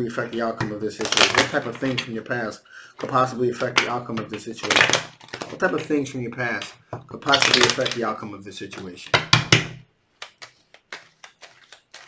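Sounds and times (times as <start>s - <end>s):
cards being shuffled: 1.0s - 2.2s, 7.3s - 8.0s, 10.2s - 12.0s
cards clicking and tapping: 3.0s - 5.6s, 7.3s - 8.0s, 8.7s - 12.0s.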